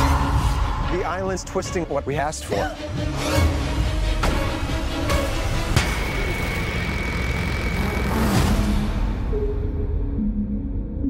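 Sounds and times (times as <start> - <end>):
horror trailer music: 0.0 - 11.0.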